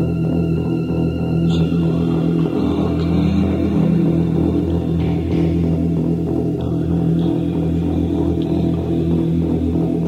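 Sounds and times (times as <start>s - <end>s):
bass and guitar droning chord: 0.0s - 10.0s
faint regular beat: 3.5s - 10.0s.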